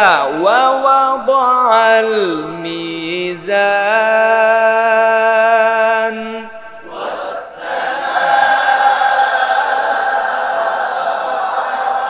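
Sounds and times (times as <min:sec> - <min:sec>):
man reciting melodically: 0:00.0 - 0:07.5
group chanting in unison: 0:06.4 - 0:12.0.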